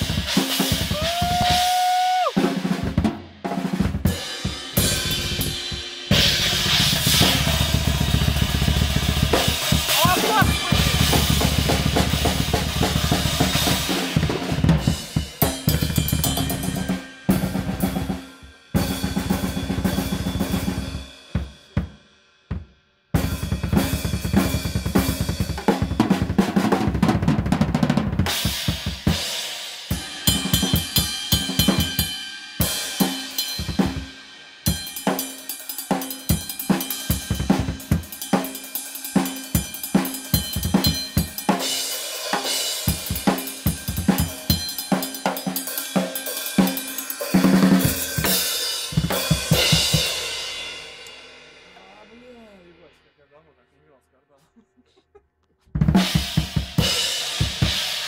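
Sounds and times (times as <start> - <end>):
acoustic drum kit played hard: 0.0 - 53.0, 55.8 - 58.0.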